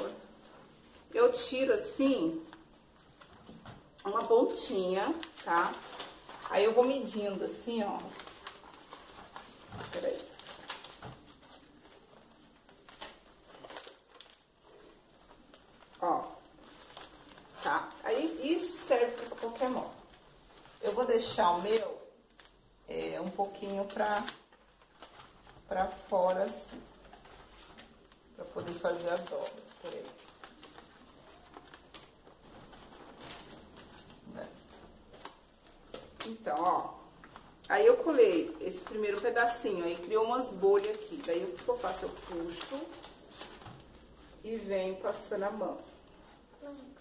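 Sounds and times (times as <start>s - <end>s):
contact paper crinkling: 0.0s - 47.0s.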